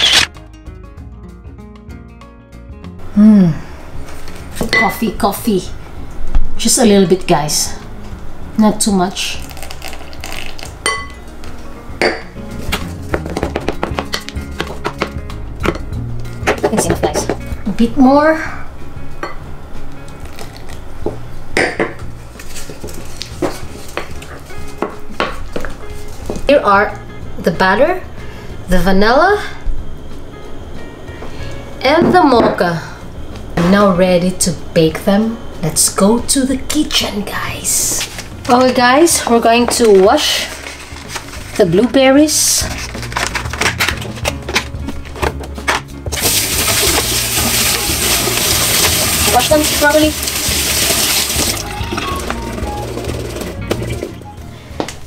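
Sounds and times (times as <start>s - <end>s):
kitchen tap water running: 46.2s - 54.2s.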